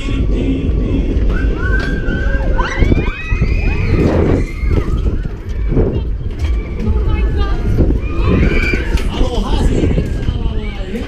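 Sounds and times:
wind on microphone: 0.0 - 11.0
riders screaming: 8.0 - 10.1.

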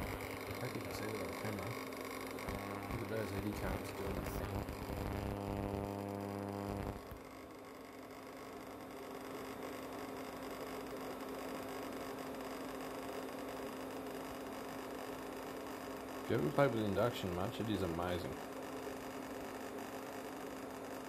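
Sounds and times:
induction cooktop hum: 0.0 - 21.0.

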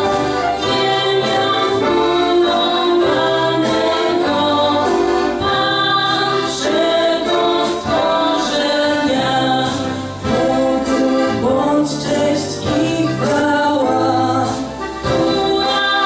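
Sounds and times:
two women singing in harmony: 0.0 - 16.0.

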